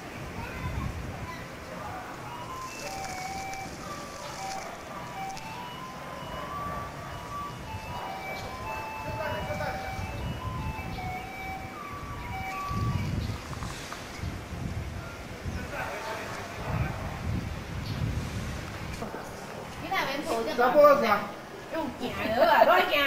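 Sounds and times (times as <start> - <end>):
street noise: 0.0 - 23.0
electronic chime melody: 2.2 - 13.3.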